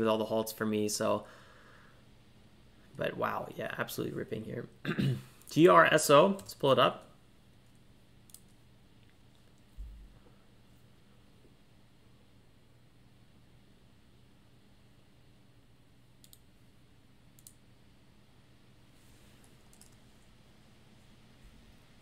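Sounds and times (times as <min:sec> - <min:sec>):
low steady hum: 0:00.0 - 0:22.0
computer mouse clicks: 0:07.6 - 0:09.7, 0:16.2 - 0:16.5, 0:17.4 - 0:17.6, 0:19.4 - 0:20.0.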